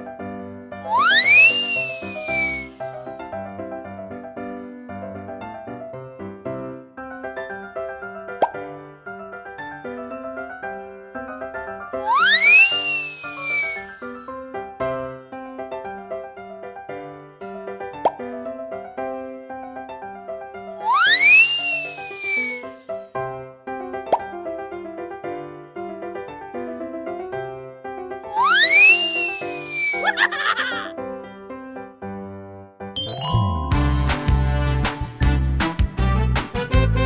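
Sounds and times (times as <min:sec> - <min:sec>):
light piano-like music: 0:00.0 - 0:37.0
upward-gliding plop effect: 0:00.8 - 0:02.7, 0:08.4 - 0:08.6, 0:12.0 - 0:14.0, 0:18.0 - 0:18.3, 0:20.8 - 0:22.7
bouncy keyboard music: 0:00.8 - 0:02.9, 0:12.0 - 0:14.2, 0:28.3 - 0:30.9, 0:33.0 - 0:37.0.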